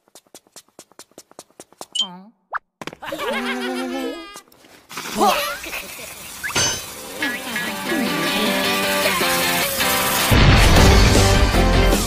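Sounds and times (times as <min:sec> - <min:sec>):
squeaky cartoon voices chattering: 0:05.2 - 0:09.4.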